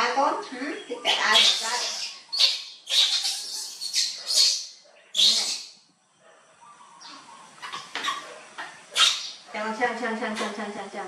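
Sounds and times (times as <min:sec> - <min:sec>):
baby monkey high-pitched cries: 0:01.0 - 0:05.8, 0:08.9 - 0:09.5.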